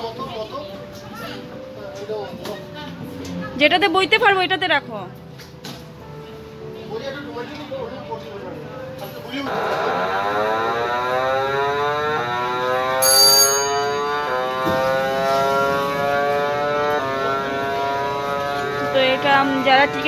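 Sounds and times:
motor whine rising in pitch: 9.5s - 13.0s, 13.6s - 20.0s.

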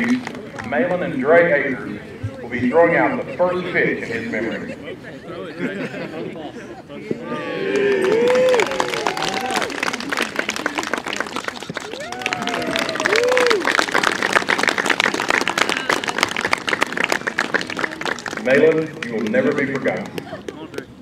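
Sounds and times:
voices cheering: 7.2s - 14.4s
crowd applauding: 7.6s - 20.8s.

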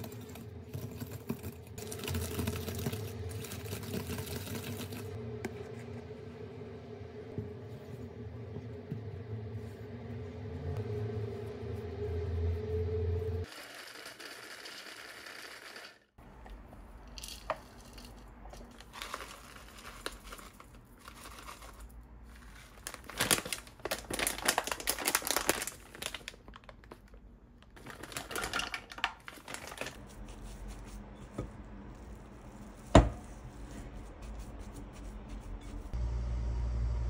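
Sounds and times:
steady low hum: 5.1s - 13.5s.

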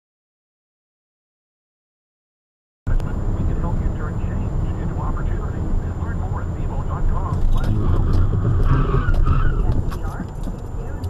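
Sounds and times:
car road and engine rumble: 2.9s - 11.0s
faint indistinct voices: 2.9s - 11.0s.

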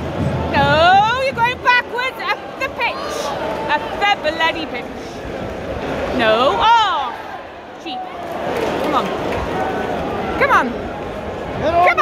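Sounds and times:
crowd babble: 0.0s - 12.0s.

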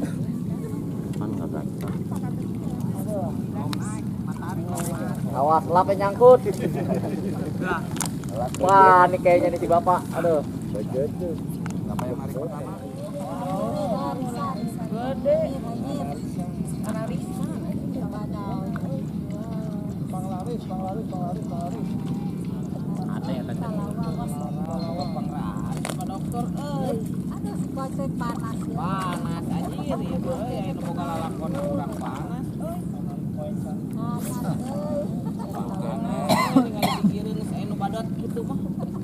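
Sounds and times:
indistinct crowd chatter: 0.0s - 39.0s
people's voices: 0.0s - 39.0s.

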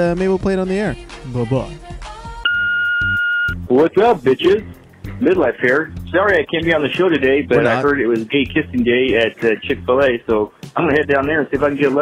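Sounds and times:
voicemail beep: 2.4s - 3.6s.

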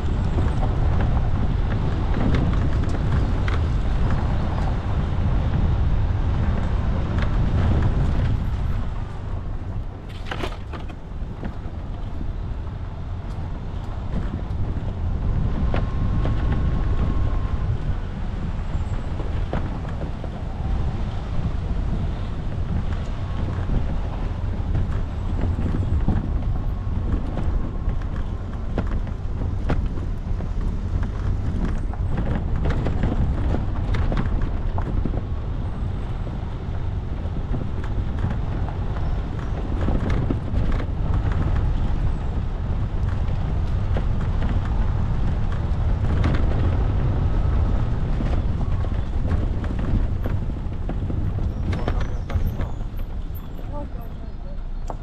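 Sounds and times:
vehicle engine and tyres rumbling: 0.0s - 55.0s
wind buffeting microphone: 0.0s - 55.0s.

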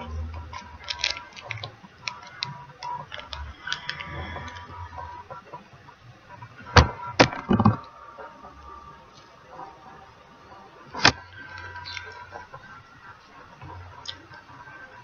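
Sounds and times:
candy wrapper crinkling: 0.4s - 4.7s
wrapper tearing: 0.5s - 4.6s.

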